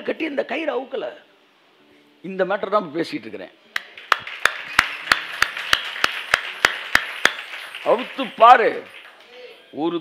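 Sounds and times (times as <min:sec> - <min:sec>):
hands clapping: 0:03.8 - 0:09.6.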